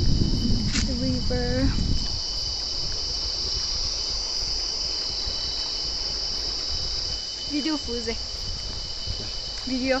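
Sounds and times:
insects buzzing: 0.0s - 10.0s.

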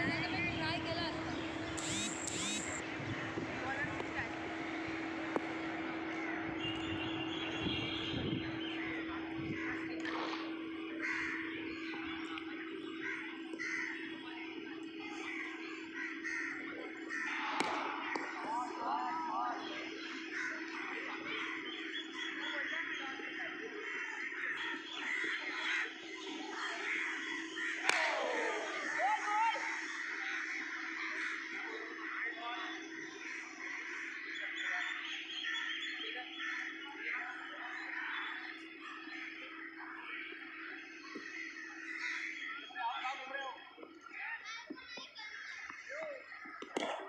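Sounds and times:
harsh bird calls: 0.0s - 2.8s, 4.6s - 44.2s
steady low hum: 0.0s - 42.6s
distant voices: 0.0s - 47.0s
crows cawing: 11.0s - 11.6s, 13.0s - 14.1s, 15.2s - 18.9s, 20.0s - 21.8s, 23.8s - 34.8s, 36.3s - 37.1s, 40.9s - 42.5s
cricket bat striking ball: 17.4s - 18.4s, 27.8s - 28.4s, 46.6s - 47.0s.

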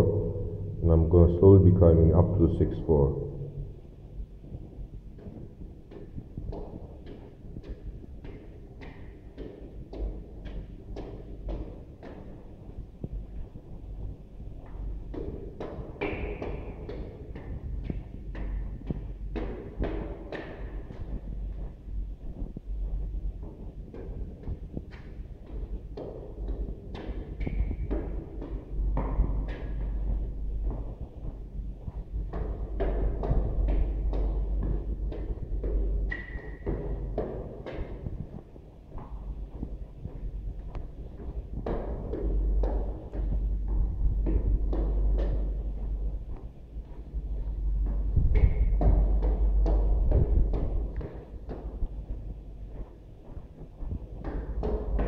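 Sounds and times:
footsteps climbing stairs: 0.0s - 55.0s.

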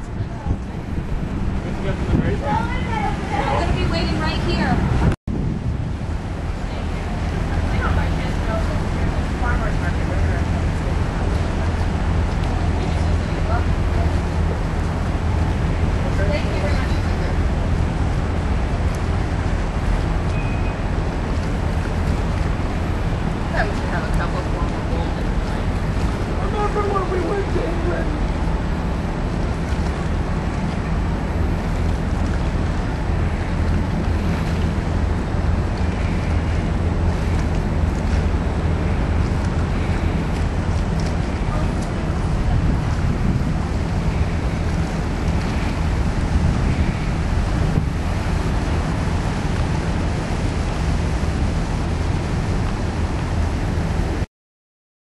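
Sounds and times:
people talking: 0.0s - 1.0s, 1.6s - 4.9s, 6.6s - 14.6s, 15.9s - 17.7s, 23.4s - 28.4s, 41.0s - 43.4s
wind buffeting microphone: 0.0s - 54.3s.

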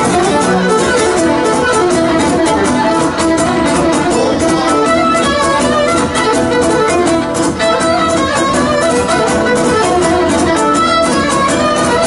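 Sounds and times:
bowed string melody: 0.0s - 12.0s
lutes strumming dance rhythm: 0.0s - 12.0s.

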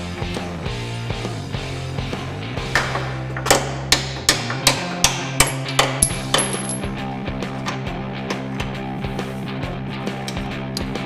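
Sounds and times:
rock music with guitar: 0.0s - 11.0s
hammer striking steel: 2.8s - 6.8s.

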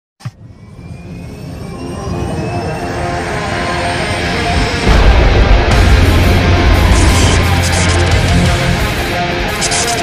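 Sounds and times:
jet-like rising whoosh: 0.4s - 8.8s.

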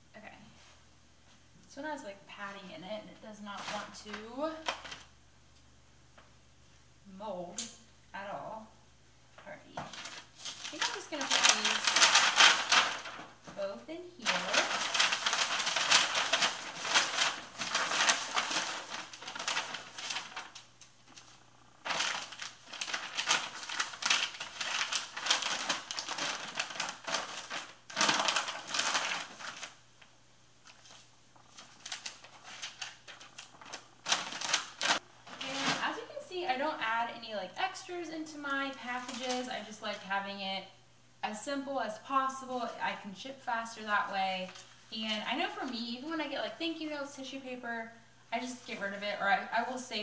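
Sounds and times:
plastic mailer bag crinkling: 3.6s - 5.1s, 9.8s - 29.8s, 30.6s - 37.0s, 38.7s - 40.0s.

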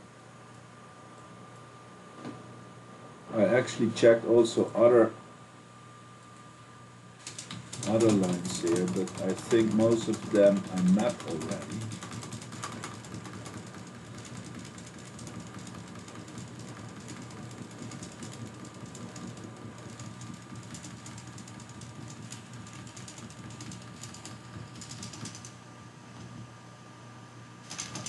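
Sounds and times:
steady low hum: 0.0s - 28.0s
mouse scroll wheel clicking: 7.3s - 21.2s.

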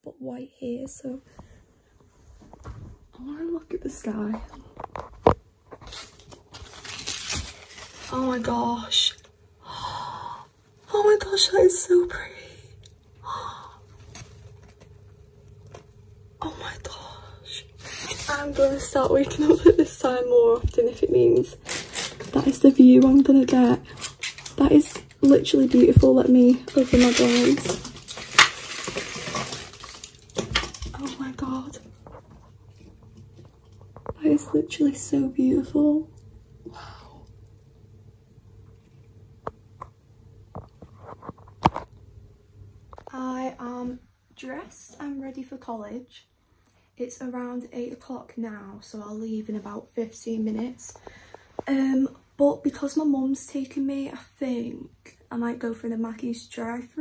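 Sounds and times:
window blind slats rustling: 21.3s - 22.7s, 23.3s - 31.6s.

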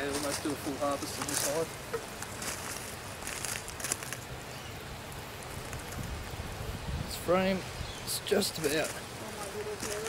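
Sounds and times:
faint crackles: 0.0s - 6.7s, 8.5s - 10.0s
wind rumbling on microphone: 1.3s - 8.1s.

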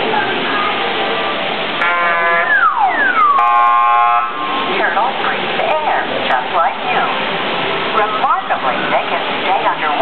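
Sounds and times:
rushing water noise: 0.0s - 10.0s
buzzer-like tone: 1.8s - 4.3s
electronic beeping tones: 2.5s - 3.7s.

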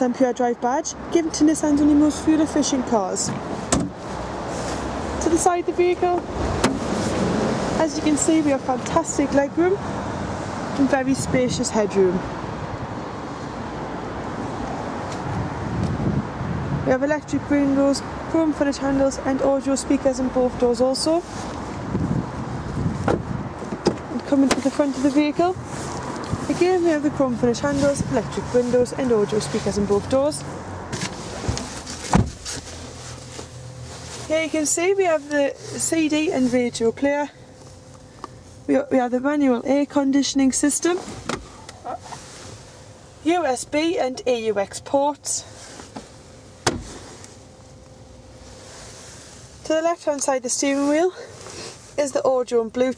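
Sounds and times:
glovebox lid swish: 6.6s - 7.0s
handling noise: 30.9s - 36.3s.

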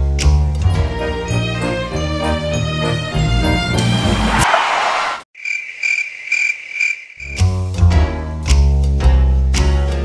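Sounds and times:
music: 0.0s - 4.4s, 7.4s - 10.0s
crickets chirping: 5.4s - 7.4s.

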